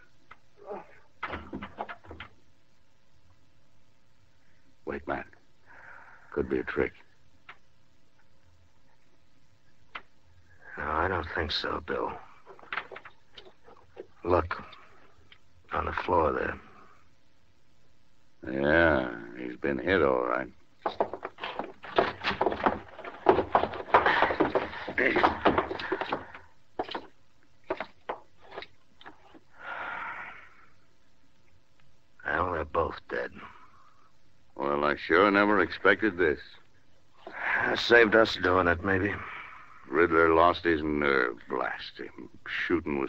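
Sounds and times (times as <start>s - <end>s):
low hiss: 0.0s - 43.0s
faint knocks and clicks: 1.2s - 2.4s, 12.4s - 15.5s, 20.8s - 29.5s
breathy rush of noise: 5.5s - 6.4s, 29.5s - 31.1s.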